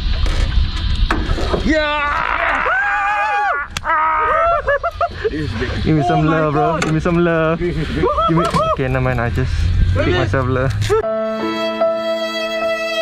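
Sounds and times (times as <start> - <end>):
men shouting and whooping: 1.6 - 6.8, 7.8 - 9.1, 10.0 - 11.1
low rumble: 4.2 - 11.0.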